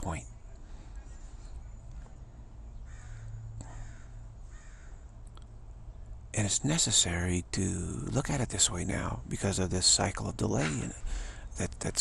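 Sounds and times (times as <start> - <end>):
faint bird calls: 0.0 - 6.2
low steady hum: 0.0 - 12.0.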